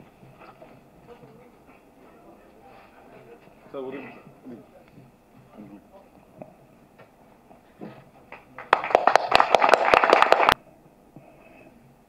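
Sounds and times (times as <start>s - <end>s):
audience applause: 8.5s - 10.6s.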